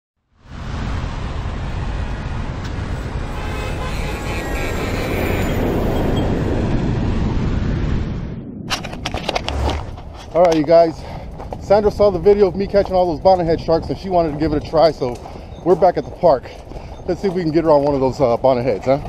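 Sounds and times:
jet airliner roar: 0.6 - 17.9.

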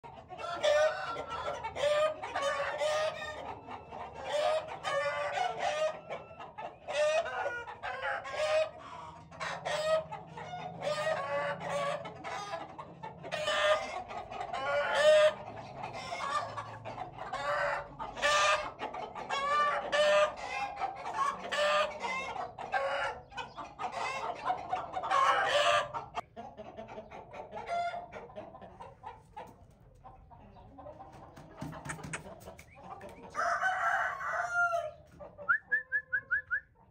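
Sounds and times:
chickens clucking and crowing: 0.0 - 36.9.

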